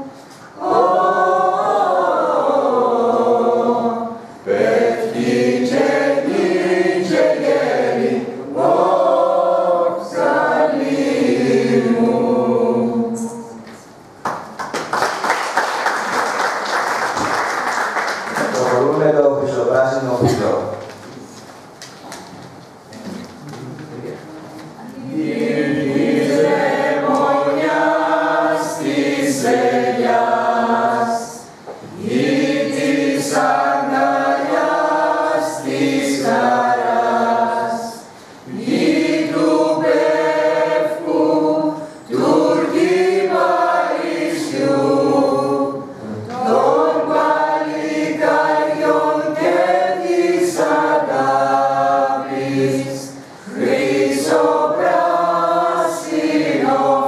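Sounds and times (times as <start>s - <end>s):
mixed choir singing: 0.0s - 13.9s, 24.8s - 57.0s.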